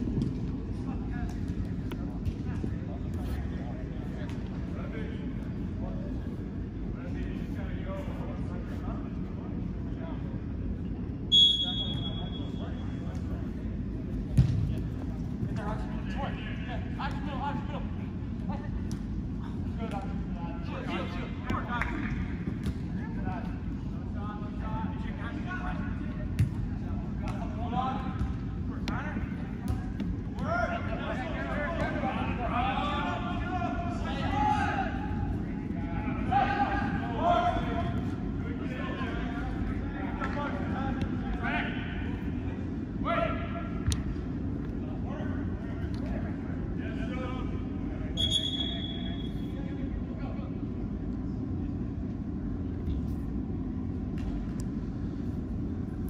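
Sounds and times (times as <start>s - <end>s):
ball being kicked: 14.3s - 14.7s
players shouting in echoing hall: 29.0s - 50.1s.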